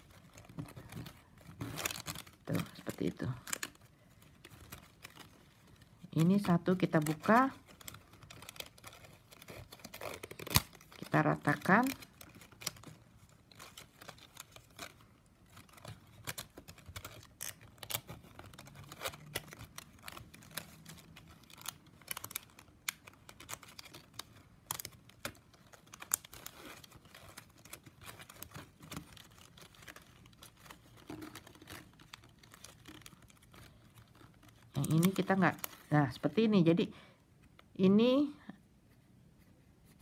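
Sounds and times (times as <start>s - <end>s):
plastic strapping crinkling and clicking: 0.0s - 36.6s.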